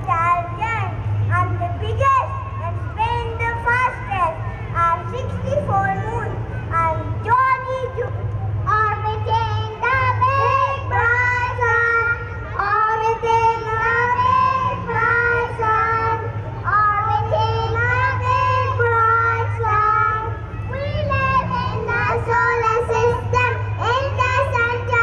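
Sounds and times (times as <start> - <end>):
child singing through pa system: 0.0 - 25.0
steady low hum: 0.0 - 25.0.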